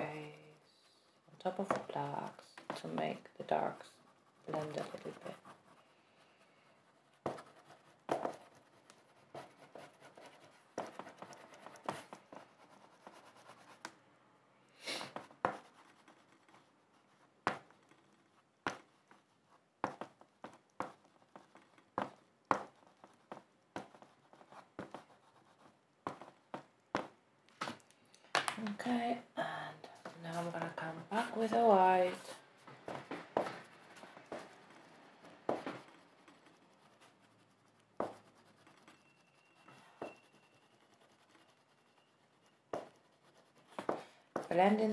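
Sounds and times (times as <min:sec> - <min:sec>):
oil pastel scratching on paper: 0:00.0 - 0:14.0, 0:14.8 - 0:27.2, 0:29.8 - 0:44.9.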